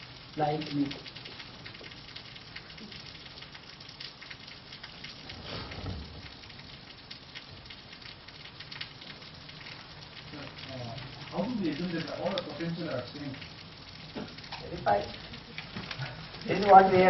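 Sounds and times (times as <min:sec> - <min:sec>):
crackling hiss: 0:00.0 - 0:17.0.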